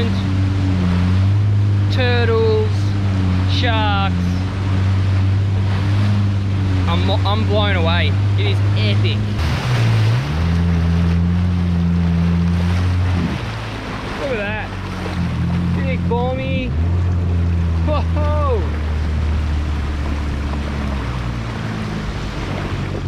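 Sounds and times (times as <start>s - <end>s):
jet ski engine droning: 0.0s - 23.0s
water splashing along hull: 0.0s - 23.0s.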